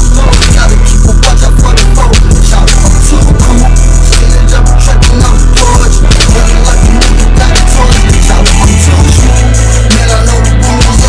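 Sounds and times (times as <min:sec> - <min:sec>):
hip hop beat with heavy bass: 0:00.0 - 0:11.0.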